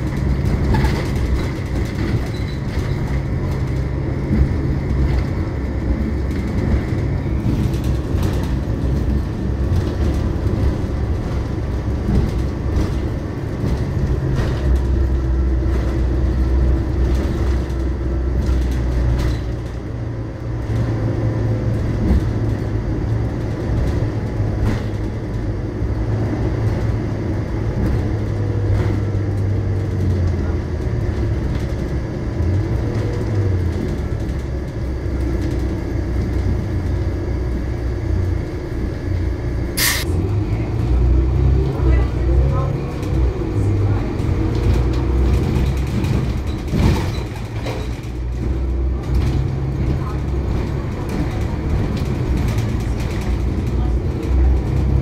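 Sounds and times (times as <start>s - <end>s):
bus diesel engine running: 0.0s - 55.0s
short sharp hiss: 39.8s - 40.0s.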